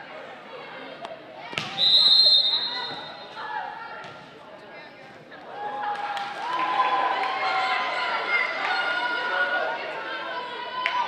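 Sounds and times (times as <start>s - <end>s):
referee's whistle blast: 1.7s - 3.3s.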